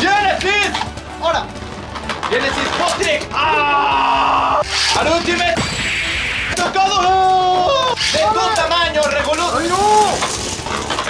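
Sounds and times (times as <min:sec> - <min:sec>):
spinning tops whirring and scraping: 0:04.6 - 0:06.7, 0:07.8 - 0:11.0.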